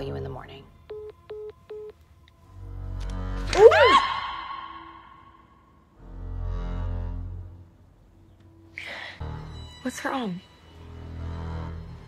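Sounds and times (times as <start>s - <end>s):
low rumbling drone music: 2.0s - 12.0s.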